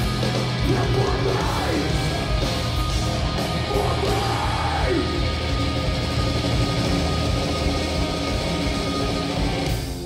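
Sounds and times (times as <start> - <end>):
live metal band playing: 0.0 - 10.0.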